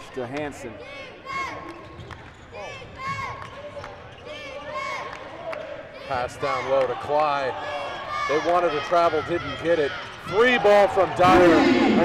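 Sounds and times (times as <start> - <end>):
arena crowd voices: 0.0 - 12.0.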